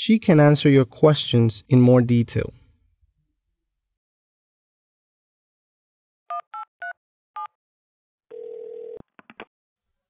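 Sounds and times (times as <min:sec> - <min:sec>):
phone ring tone: 0:08.3 - 0:09.0.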